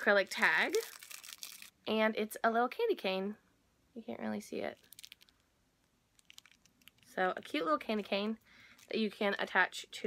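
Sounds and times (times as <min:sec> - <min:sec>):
plastic bag crinkling: 0:00.0 - 0:01.8, 0:04.7 - 0:05.4, 0:06.1 - 0:09.5.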